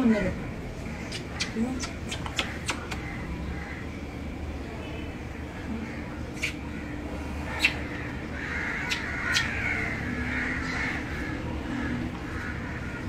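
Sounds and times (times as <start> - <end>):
harsh crow-like animal calls: 2.5 - 4.0, 5.7 - 13.0.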